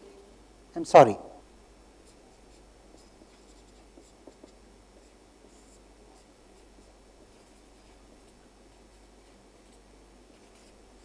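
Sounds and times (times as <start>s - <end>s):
marker writing on paper: 2.0s - 11.0s.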